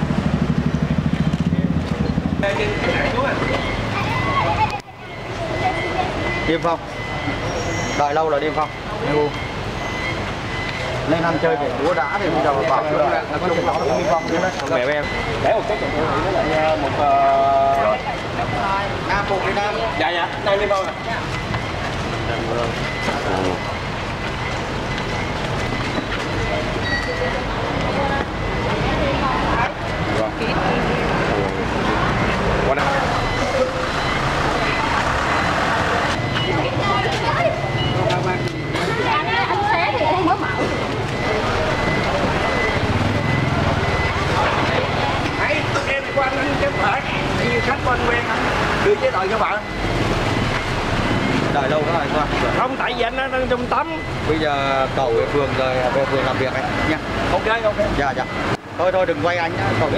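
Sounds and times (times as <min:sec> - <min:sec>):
people talking: 0:00.0 - 0:59.9
street noise: 0:00.0 - 0:59.9
truck engine idling: 0:17.9 - 0:57.8.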